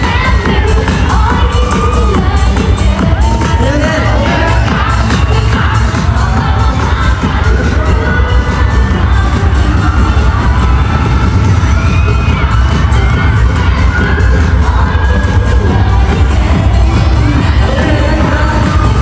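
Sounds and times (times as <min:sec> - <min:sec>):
amplified pop music with deep bass: 0:00.0 - 0:19.0
crowd screaming and cheering: 0:00.0 - 0:19.0.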